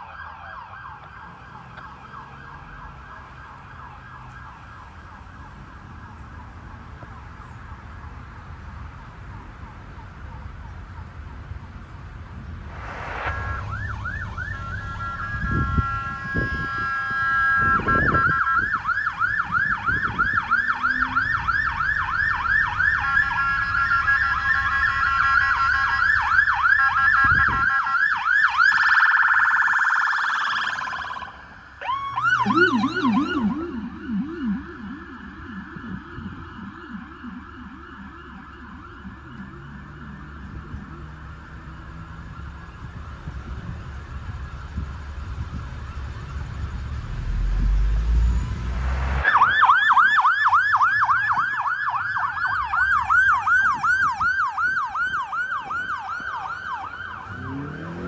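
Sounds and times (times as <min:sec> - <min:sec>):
yelping police siren: 0:00.0 - 0:07.6, 0:13.3 - 0:48.5, 0:49.2 - 0:58.0
warbling police siren: 0:00.0 - 0:58.0.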